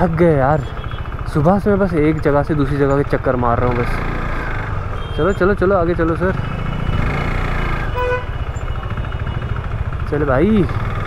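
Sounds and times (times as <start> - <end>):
motorcycle engine idling: 0.0 - 11.0
vehicle horn beep: 5.0 - 5.5, 6.3 - 9.5.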